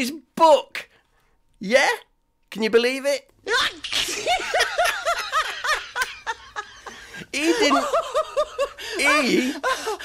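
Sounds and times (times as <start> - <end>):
man laughing hard: 3.5 - 10.0.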